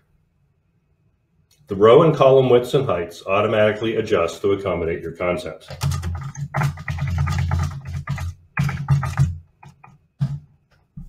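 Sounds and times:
computer keyboard typing: 0:05.7 - 0:10.4.

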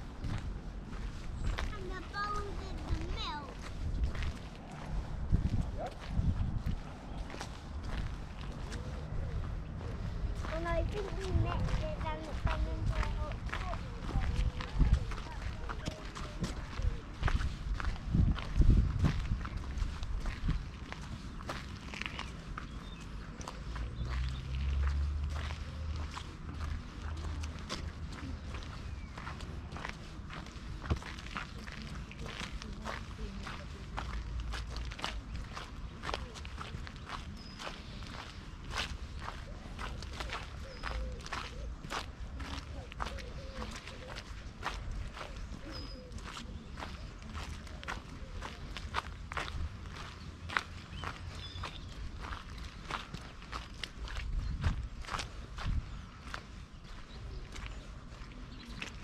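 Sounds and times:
footsteps on gravel and mud: 0:00.0 - 0:59.0.

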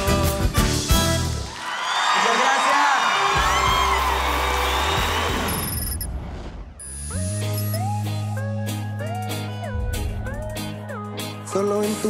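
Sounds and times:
audience cheering and applauding: 0:01.3 - 0:06.0.

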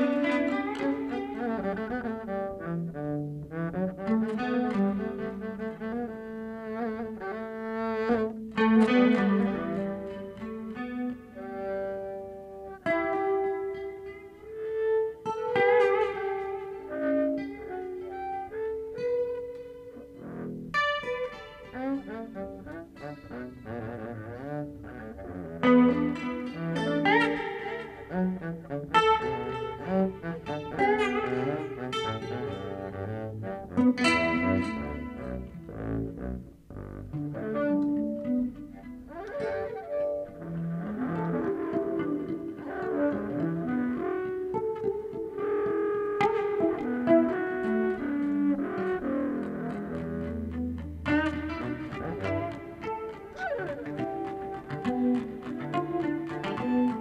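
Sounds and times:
bowed double bass: 0:00.0 - 0:57.0
guitar playing: 0:00.0 - 0:57.0.

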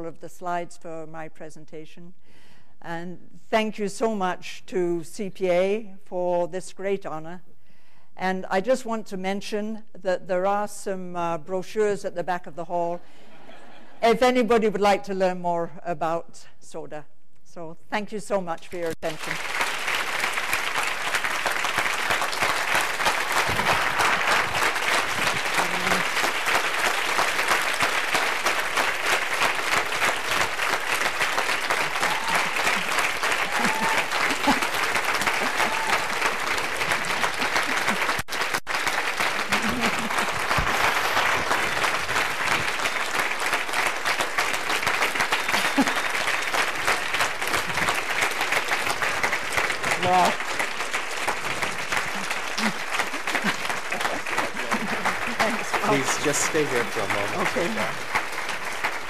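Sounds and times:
audience applauding: 0:18.9 - 0:59.0.

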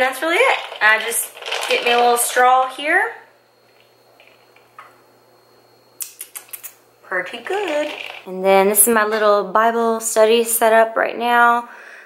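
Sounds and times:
ice cubes clinking in glass jar: 0:00.2 - 0:02.6, 0:07.4 - 0:08.3.

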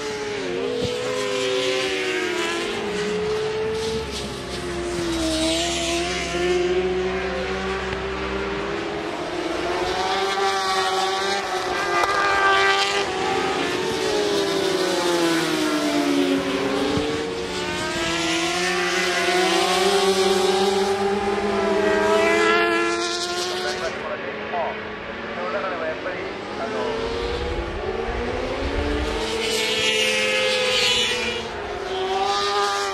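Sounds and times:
racing motorcycles passing: 0:00.0 - 0:32.9.

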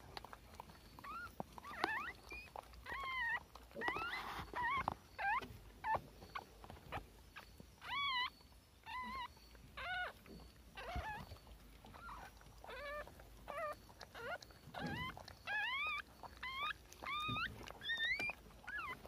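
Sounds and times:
newborn puppies squeaking: 0:00.0 - 0:19.0.

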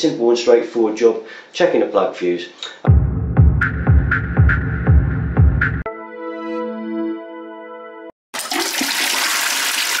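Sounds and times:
toilet flushing: 0:08.4 - 0:10.0.

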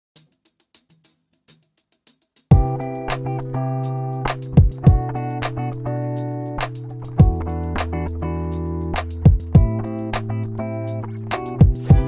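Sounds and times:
light clicking percussion: 0:00.2 - 0:12.0.

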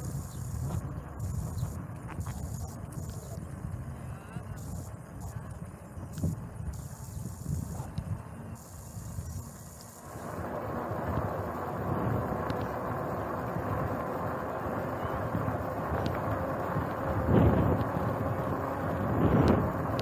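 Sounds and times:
bicycle tyres rolling on concrete: 0:00.0 - 0:20.0
steady hiss: 0:00.0 - 0:20.0
wind buffeting microphone: 0:10.2 - 0:20.0.

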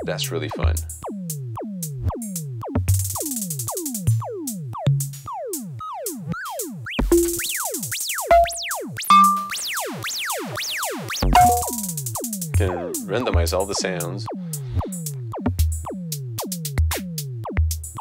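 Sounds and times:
electronic drum beat: 0:07.0 - 0:07.6, 0:08.3 - 0:09.6, 0:11.3 - 0:12.0.

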